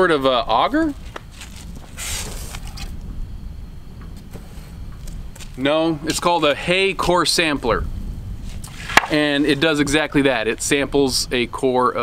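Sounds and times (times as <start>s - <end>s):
low outdoor rumble: 0.0s - 12.0s
hissing rustle: 0.5s - 11.3s.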